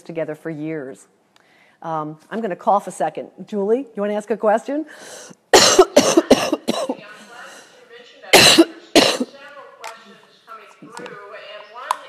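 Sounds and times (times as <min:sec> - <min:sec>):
woman coughing: 0:05.5 - 0:07.1, 0:08.3 - 0:09.3.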